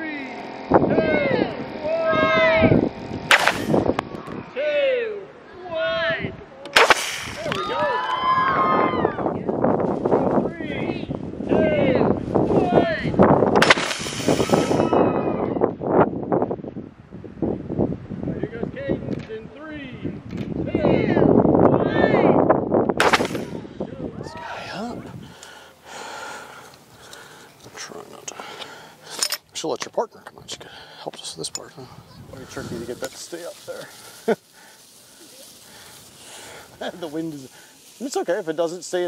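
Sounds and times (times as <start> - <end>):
children's voices calling: 0.4 - 3.1, 3.7 - 4.6, 23.4 - 29.2, 31.8 - 32.9
water rocket air rush: 3.3 - 3.9, 6.8 - 7.6, 13.6 - 15.0.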